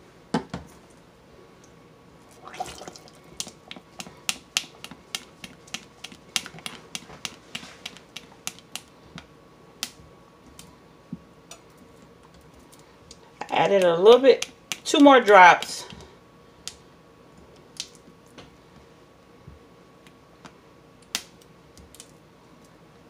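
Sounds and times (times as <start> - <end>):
utensil clicking against pot: 3.4 - 8.9.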